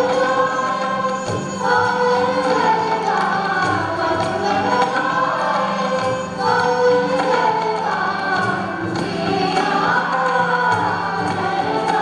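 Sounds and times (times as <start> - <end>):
group of voices singing: 0.0 - 12.0
tablas: 0.0 - 12.0.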